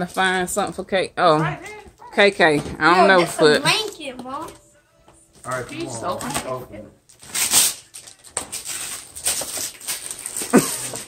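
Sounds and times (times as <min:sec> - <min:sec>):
wrapping paper tearing: 0:05.5 - 0:11.0.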